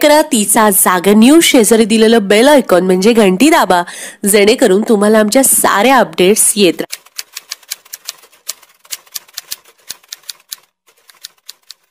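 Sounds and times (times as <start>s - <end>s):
typewriter keys clicking: 6.9s - 11.9s.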